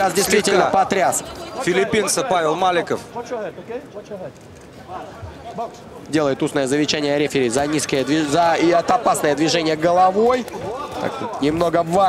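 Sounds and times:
arena background noise: 0.0s - 12.0s
commentary speech: 0.0s - 12.0s.

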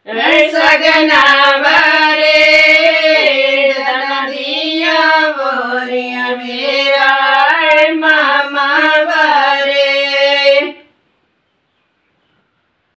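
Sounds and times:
women singing unaccompanied: 0.0s - 10.9s.

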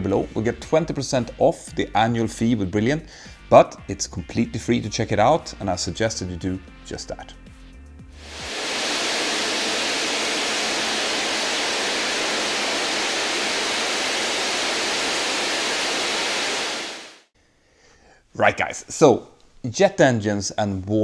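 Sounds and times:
jet engine rushing: 8.2s - 17.3s.

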